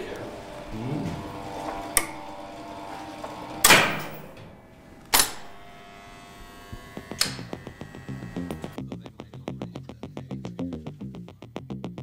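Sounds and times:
relays clacking: 0:00.0 - 0:05.6.

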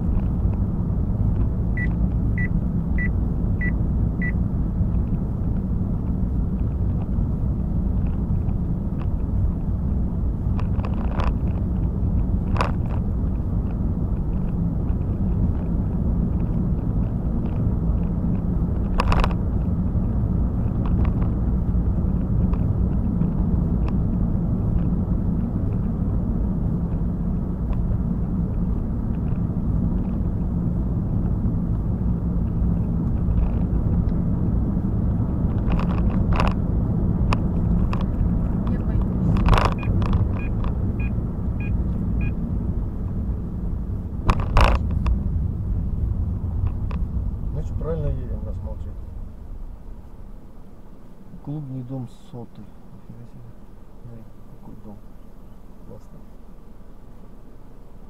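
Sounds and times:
car cabin road rumble: 0:00.0 - 0:58.0.

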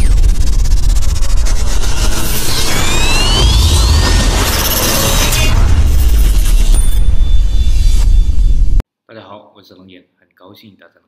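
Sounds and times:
deep bass rumble: 0:00.0 - 0:08.8
noisy rush with crackle: 0:00.0 - 0:08.8.

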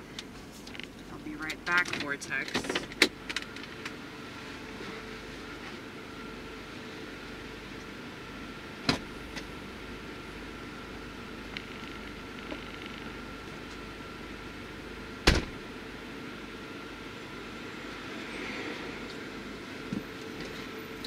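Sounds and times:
steady hum inside car: 0:00.0 - 0:21.0
loud sharp thump: 0:15.2 - 0:15.6.

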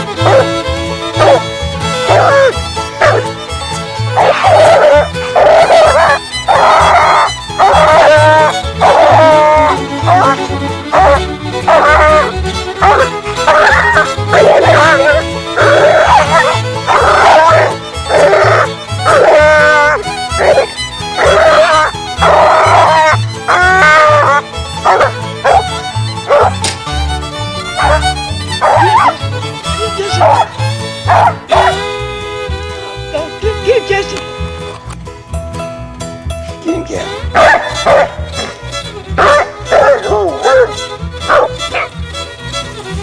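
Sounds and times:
dog barking: 0:00.2 - 0:00.5, 0:01.2 - 0:01.4, 0:02.1 - 0:03.3, 0:04.2 - 0:26.6, 0:27.8 - 0:28.0, 0:28.6 - 0:29.2, 0:30.2 - 0:30.5, 0:31.1 - 0:31.8, 0:37.3 - 0:38.5, 0:39.2 - 0:40.7, 0:41.3 - 0:42.0.

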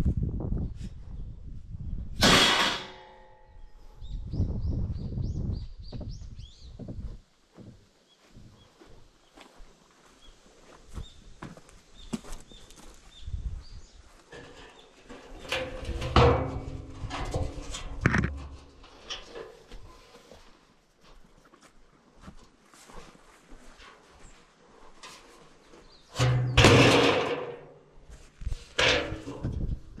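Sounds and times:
loud ringing metal clang: 0:02.2 - 0:03.7
bird chirping: 0:03.5 - 0:07.1
scaffolding pipes clanking: 0:14.3 - 0:19.6, 0:28.7 - 0:29.8.

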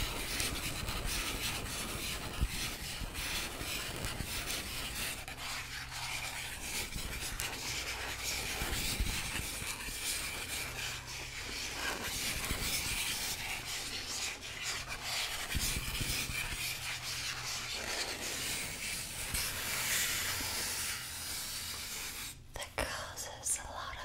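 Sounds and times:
hands rustling and rubbing object: 0:00.0 - 0:22.5.

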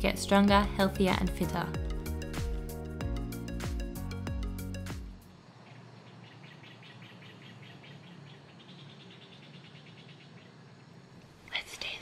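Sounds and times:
crickets chirping: 0:05.2 - 0:12.0
low steady background noise: 0:05.2 - 0:12.0.

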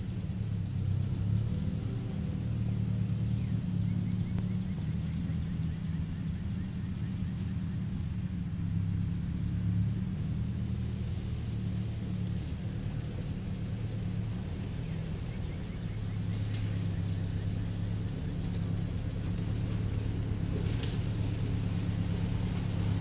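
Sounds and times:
tractor engine running: 0:00.0 - 0:23.0.

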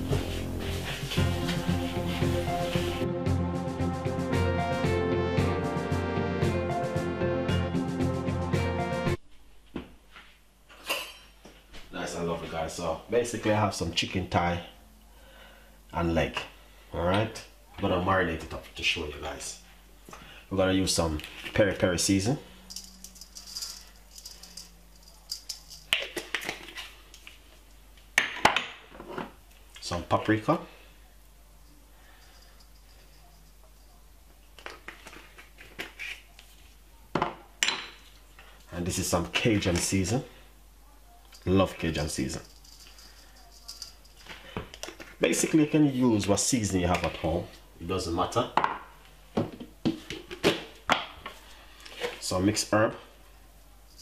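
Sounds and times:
shaker jar rattling: 0:22.0 - 0:27.0, 0:41.3 - 0:45.1.

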